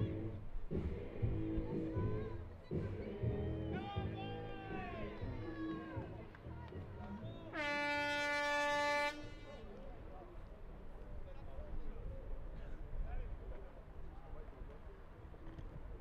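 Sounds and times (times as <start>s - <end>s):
stadium air horn blast: 7.5s - 9.6s.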